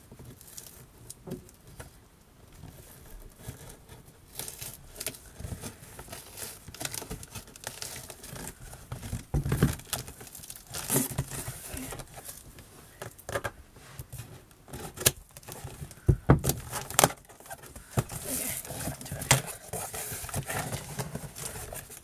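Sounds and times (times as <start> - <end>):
cardboard crinkling: 2.7 - 22.0.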